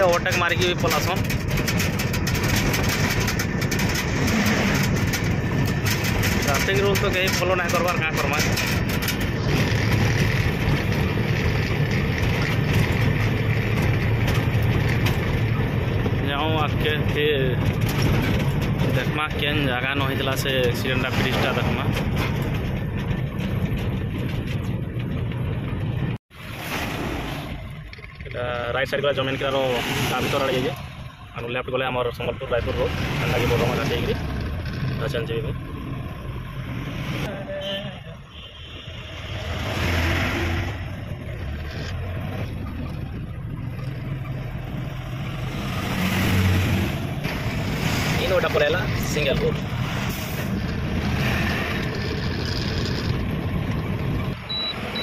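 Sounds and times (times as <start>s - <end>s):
truck diesel engine rumbling: 0.0s - 38.3s, 39.0s - 55.0s
road noise: 0.0s - 55.0s.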